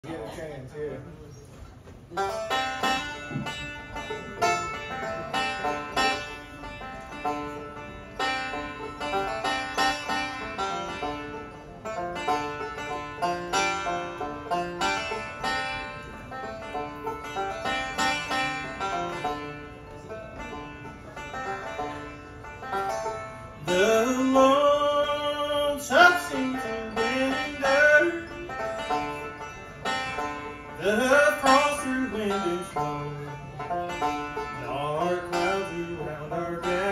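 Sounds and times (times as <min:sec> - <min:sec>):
resonator guitar: 0:01.7 - 0:36.9
banjo playing: 0:02.0 - 0:36.9
acoustic guitars: 0:02.2 - 0:36.9.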